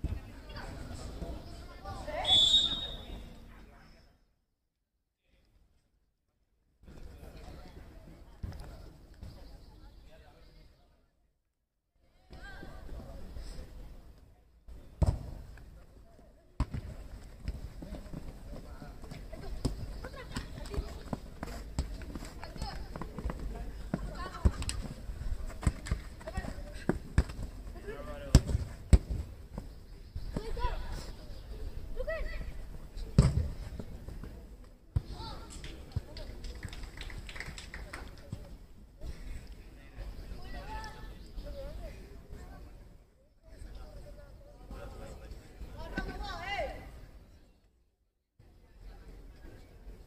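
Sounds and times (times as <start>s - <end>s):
ball being kicked: 33.2s - 33.6s.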